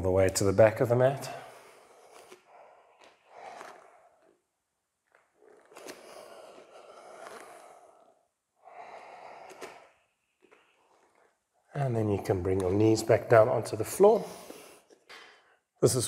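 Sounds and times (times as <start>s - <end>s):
man breathing heavily: 1.3s - 4.4s, 5.8s - 10.1s.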